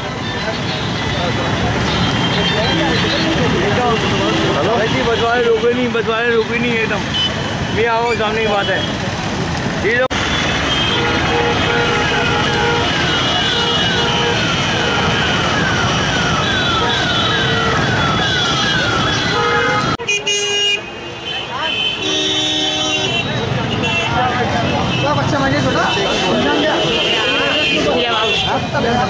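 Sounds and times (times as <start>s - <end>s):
vehicle horns honking: 0.0s - 5.8s, 6.4s - 7.8s, 10.1s - 15.6s, 16.3s - 28.8s
motorbike engines running: 0.0s - 20.0s, 21.4s - 29.0s.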